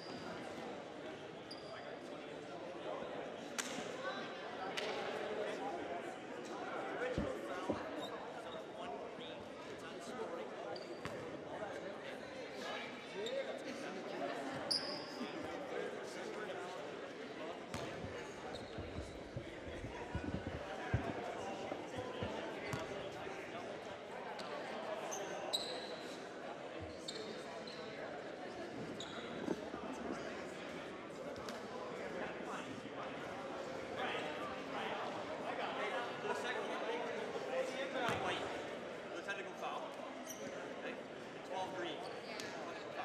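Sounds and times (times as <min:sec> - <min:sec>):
murmur of voices: 0:00.0 - 0:43.0.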